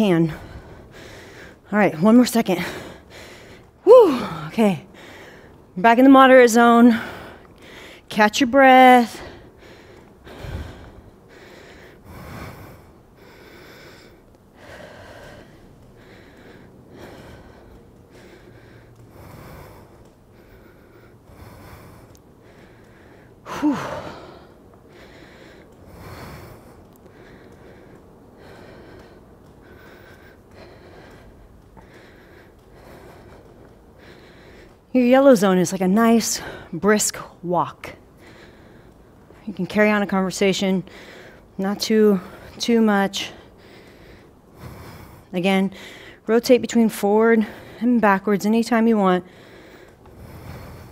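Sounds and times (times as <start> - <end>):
woman breathing hard: 0.2 - 1.7, 2.5 - 5.8, 6.9 - 8.1, 9.1 - 35.3, 36.2 - 39.5, 40.6 - 46.3, 49.2 - 50.9.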